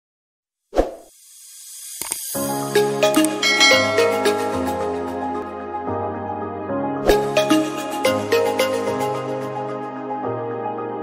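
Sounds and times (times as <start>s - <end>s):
background music: 2.3s - 11.0s.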